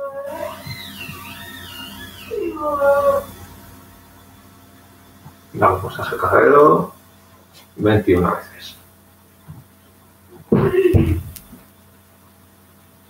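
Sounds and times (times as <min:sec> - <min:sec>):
animal calls: 0:00.0 - 0:03.5.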